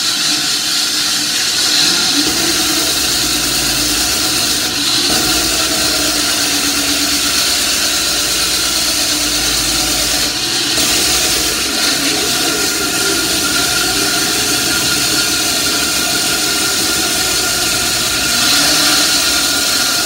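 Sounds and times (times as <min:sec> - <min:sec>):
concrete saw cutting concrete: 0:00.0 - 0:20.0.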